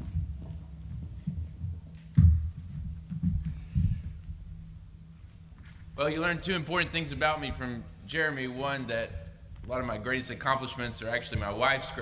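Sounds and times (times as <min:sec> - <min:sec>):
microphone handling thuds and rubbing: 0:00.0 - 0:08.0, 0:10.8 - 0:12.0.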